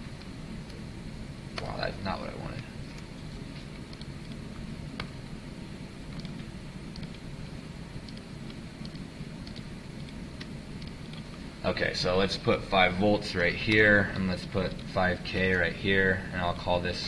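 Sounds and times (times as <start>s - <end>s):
low room hum: 0.0s - 17.0s
computer mouse clicks: 2.9s - 5.2s, 6.1s - 7.3s, 8.0s - 11.4s.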